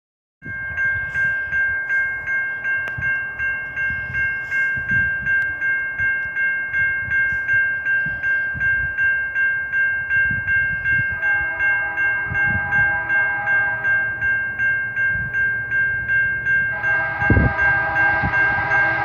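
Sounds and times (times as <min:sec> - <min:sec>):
railroad crossing bell ringing: 0:00.4 - 0:19.0
train horn: 0:11.1 - 0:14.2, 0:16.7 - 0:19.0.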